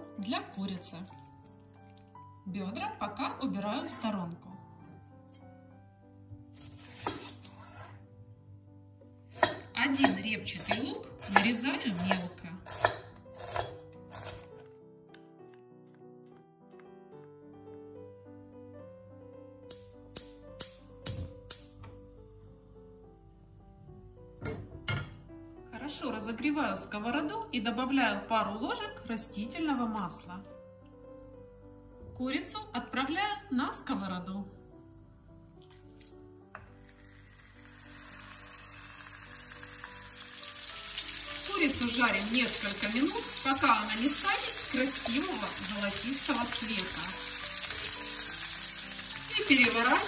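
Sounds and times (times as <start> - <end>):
piano-like background music: 0.0 - 50.0
gas stove igniter clicking: 19.7 - 21.7
chicken frying in hot oil: 37.1 - 50.0.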